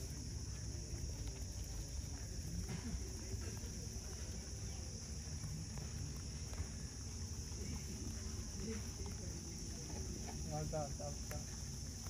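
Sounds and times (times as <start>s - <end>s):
rabbits munching grass: 0.0s - 12.0s.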